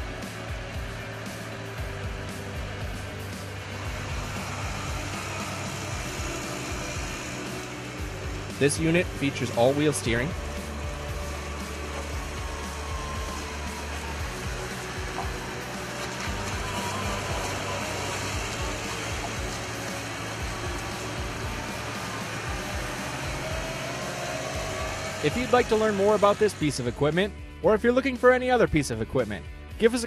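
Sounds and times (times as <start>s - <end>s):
wheel loader driving: 0.0s - 27.4s
background music: 0.0s - 30.0s.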